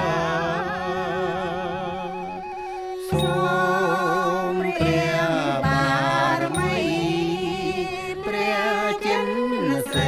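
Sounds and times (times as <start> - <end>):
chanting in held notes: 0.0 - 2.1, 3.0 - 10.0.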